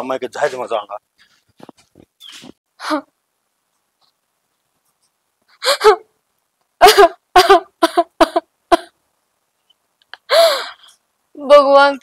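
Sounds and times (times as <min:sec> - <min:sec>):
woman sobbing: 0:05.6 - 0:06.1, 0:06.8 - 0:09.0, 0:10.2 - 0:10.8.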